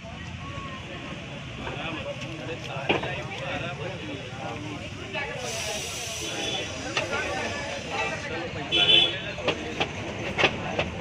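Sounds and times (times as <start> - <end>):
chatter of voices: 0.0 - 11.0
street noise: 0.0 - 11.0
steady hiss: 5.4 - 8.2.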